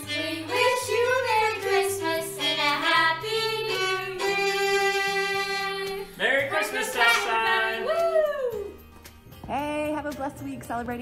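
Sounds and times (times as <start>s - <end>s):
voice: 9.5s - 11.0s.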